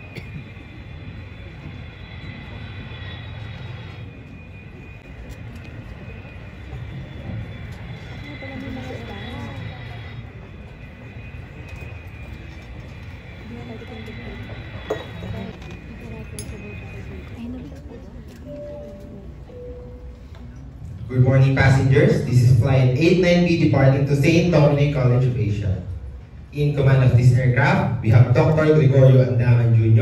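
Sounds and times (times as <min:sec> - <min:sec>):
audience murmuring: 0:00.0 - 0:30.0
low rumble with high whine: 0:00.0 - 0:30.0.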